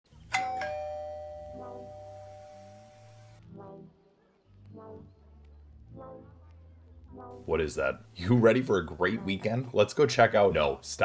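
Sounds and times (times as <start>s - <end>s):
ding-dong doorbell chime: 0.3s - 3.3s.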